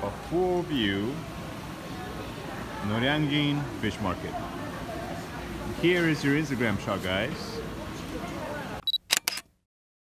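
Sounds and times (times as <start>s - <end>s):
market hubbub: 0.0s - 9.0s
camera focus beep: 8.8s - 9.5s
camera shutter clicks: 8.8s - 9.5s.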